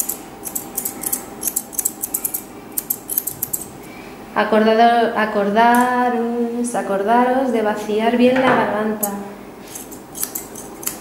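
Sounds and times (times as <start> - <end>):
grooming scissors snipping fur: 0.0 - 3.7, 9.0 - 11.0.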